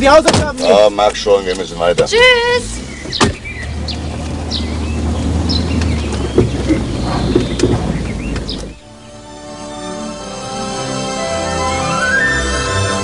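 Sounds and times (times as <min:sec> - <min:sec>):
car engine running: 0:00.0 - 0:10.8
sharp thump: 0:03.0 - 0:03.5.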